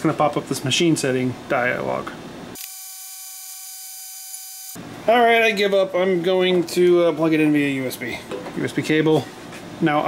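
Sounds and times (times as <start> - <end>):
electronic buzzing tone: 2.6 - 4.8.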